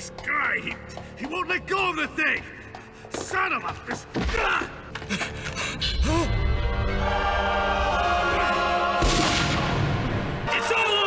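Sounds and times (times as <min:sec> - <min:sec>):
choir holding sustained chords: 0:06.4 - 0:11.0.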